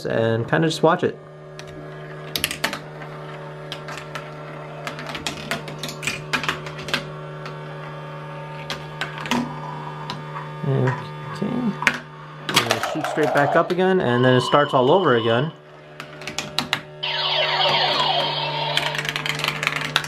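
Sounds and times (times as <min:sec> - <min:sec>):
motor humming: 0:17.0 - 0:19.5.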